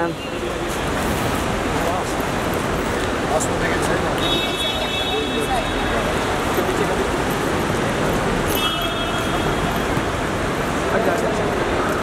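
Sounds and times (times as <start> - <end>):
road traffic noise: 0.0 - 12.0.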